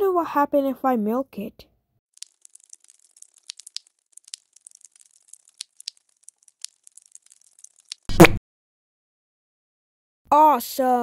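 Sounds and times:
liquid pouring and splashing: 2.2 - 8.2.

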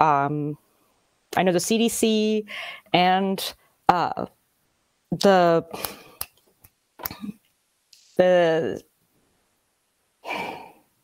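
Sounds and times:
person sighing: 10.2 - 10.9.

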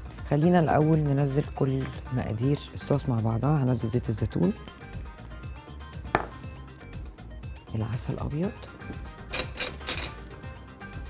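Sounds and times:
faint background music: 0.0 - 11.0
glassware clink: 9.3 - 10.2.

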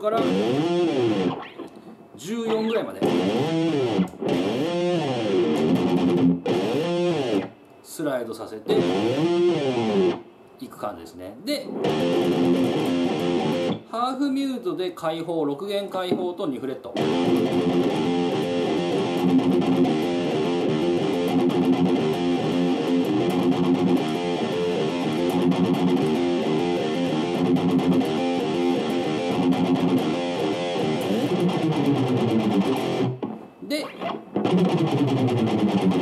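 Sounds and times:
distorted palm-muted guitar chugging: 0.2 - 1.7, 3.0 - 7.5, 8.8 - 10.2, 11.7 - 13.8, 17.0 - 36.0.

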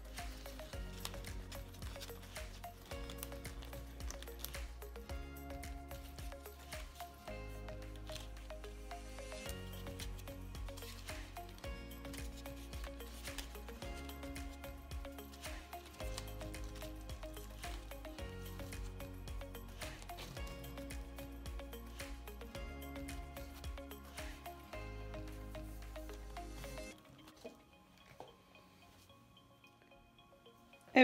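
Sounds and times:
potting bark crackling: 0.0 - 19.0
quiet background music: 0.0 - 31.0.

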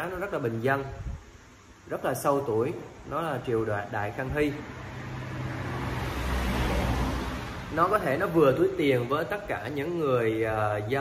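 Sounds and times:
vehicle passing by: 4.3 - 8.8.

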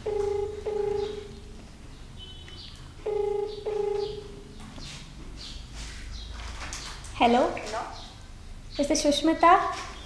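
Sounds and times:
phone ringback tone: 0.0 - 1.5, 3.0 - 4.5.

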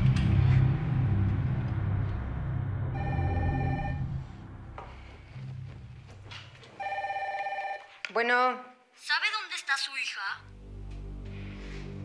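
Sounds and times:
telephone ringing: 3.0 - 4.2, 6.8 - 8.0.

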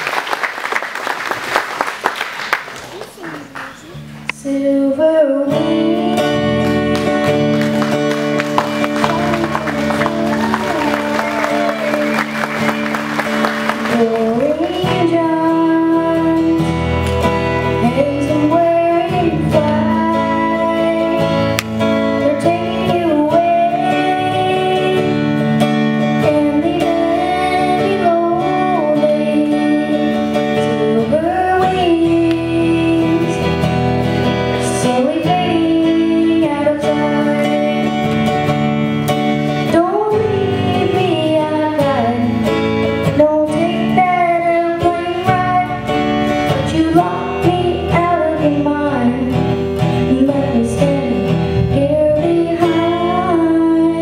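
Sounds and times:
acoustic guitar strumming: 3.5 - 54.0
boy singing: 3.8 - 7.3, 8.7 - 12.4, 13.8 - 16.7, 17.8 - 21.4, 22.2 - 25.3, 26.1 - 33.6, 34.6 - 38.1, 39.6 - 54.0.

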